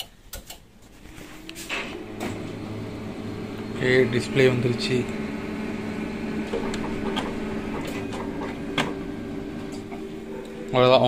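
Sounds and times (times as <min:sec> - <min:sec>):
copier mechanical hum: 0:00.3 - 0:11.0
copier clicks: 0:06.3 - 0:10.8.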